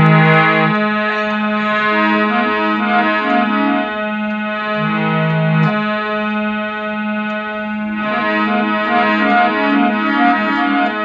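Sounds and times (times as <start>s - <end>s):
harmonium chord over drone: 0.0s - 11.0s.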